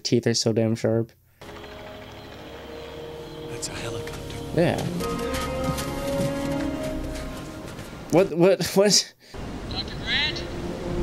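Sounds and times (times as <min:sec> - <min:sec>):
distant helicopter hum: 0:01.4 - 0:08.1
held music notes: 0:01.4 - 0:08.3.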